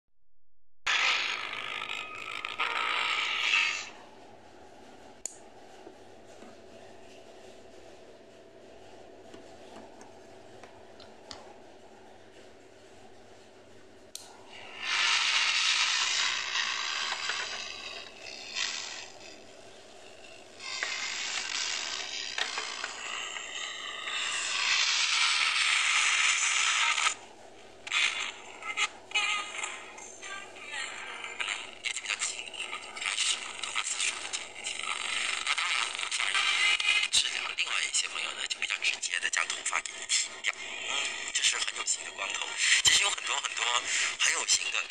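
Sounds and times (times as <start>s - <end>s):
radio loudspeaker hiss and crackle: 20.2s - 27.2s, 27.8s - 44.9s.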